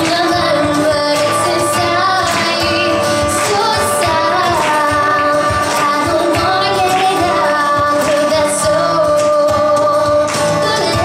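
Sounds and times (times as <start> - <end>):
strummed acoustic guitar: 0.0 - 11.0
woman singing: 0.0 - 11.0.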